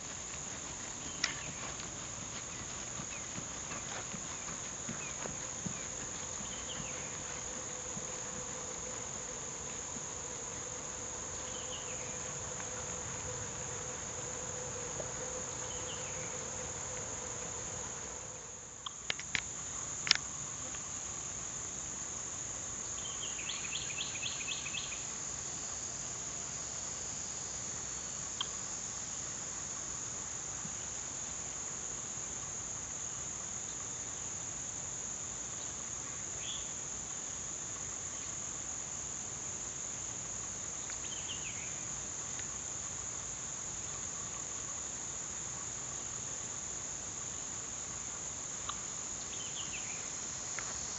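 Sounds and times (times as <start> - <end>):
insects chorus: 0.0 - 50.9.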